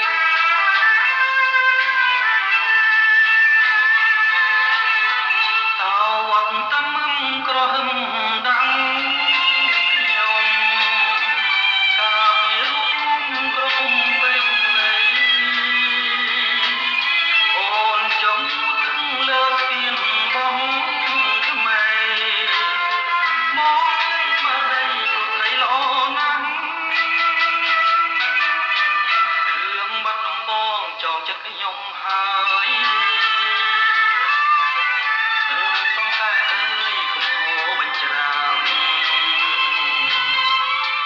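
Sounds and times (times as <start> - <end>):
man singing: 3.6 - 41.0.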